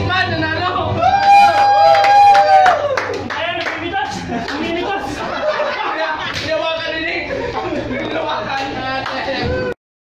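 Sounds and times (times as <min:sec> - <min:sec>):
hand clapping: 0:01.6 - 0:04.7, 0:06.3 - 0:06.6, 0:08.5 - 0:09.3.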